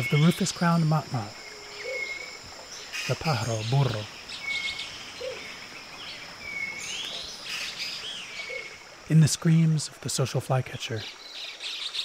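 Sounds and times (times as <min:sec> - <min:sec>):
high insect drone: 0:00.0 - 0:12.0
faint low hoots: 0:01.3 - 0:02.4
birds whistling: 0:01.4 - 0:08.8.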